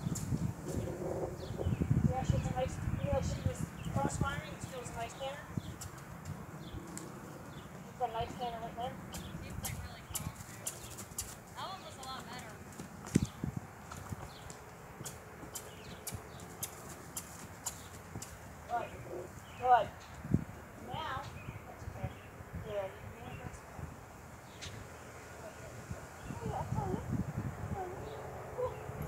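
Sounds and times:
soft hoofbeats on grass: 4.0 - 19.5.

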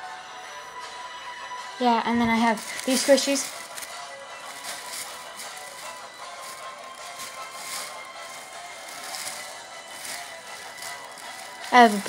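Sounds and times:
background music: 0.0 - 12.0
plastic bag crinkling: 2.4 - 12.0.

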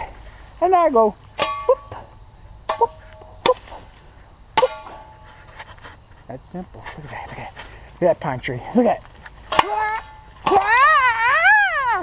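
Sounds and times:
machete chopping wood: 1.4 - 1.8, 2.7 - 4.0, 4.6 - 5.1, 9.5 - 10.9.

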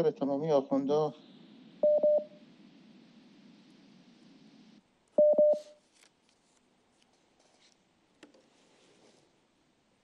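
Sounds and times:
open-line hiss: 0.0 - 5.0
telephone beeps: 1.8 - 2.4, 5.2 - 5.8.

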